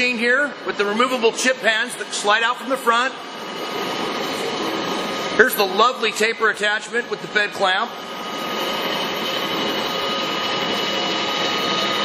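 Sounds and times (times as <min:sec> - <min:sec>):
lathe whirring with high whine: 0:00.0 - 0:12.0.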